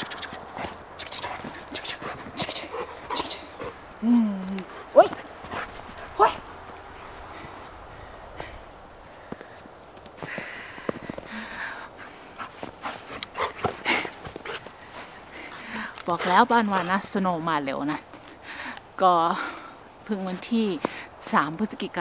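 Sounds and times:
dog whining: 0.0 - 6.6
footsteps crunching in snow: 12.0 - 17.1.

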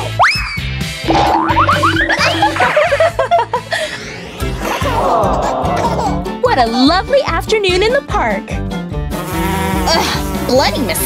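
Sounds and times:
comedic background music: 0.0 - 11.0
cartoon upward pitch slide: 1.1 - 6.2.

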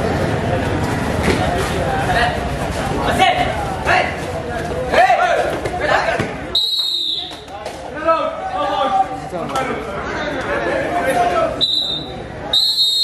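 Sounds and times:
referee whistle blast: 6.6 - 7.4, 11.6 - 13.0.

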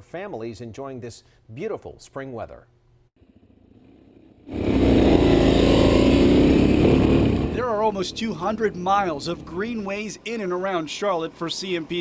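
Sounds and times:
dirt bike engine running: 3.2 - 10.2
person narrating: 7.5 - 12.0.

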